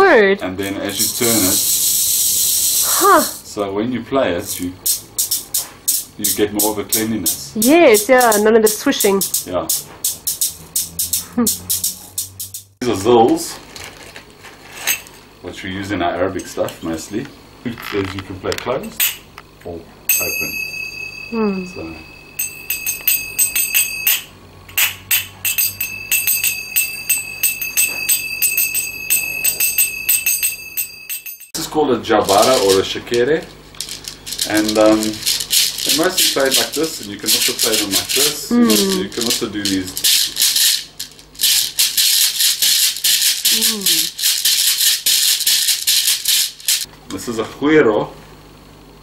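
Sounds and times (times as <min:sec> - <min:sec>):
beaded gourd shaker rattling: 0:00.7 - 0:03.4, 0:04.5 - 0:12.8, 0:33.7 - 0:46.9
finger cymbals ringing: 0:04.8 - 0:12.8, 0:20.1 - 0:31.6.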